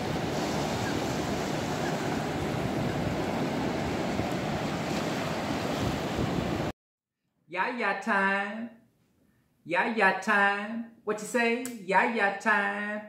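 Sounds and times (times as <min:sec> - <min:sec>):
ocean waves breaking on a beach: 0:00.0 - 0:06.7
wind rumbling on microphone: 0:00.0 - 0:06.7.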